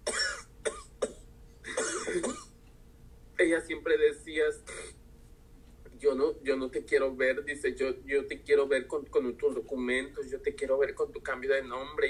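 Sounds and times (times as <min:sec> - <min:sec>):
woman sobbing: 0:04.7 - 0:04.9.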